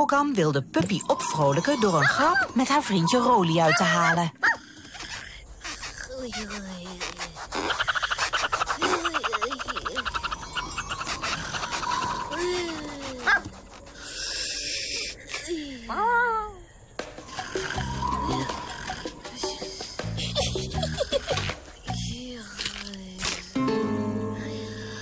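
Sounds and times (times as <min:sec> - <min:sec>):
light background music: 0:17.0 - 0:22.6, 0:23.4 - 0:25.0.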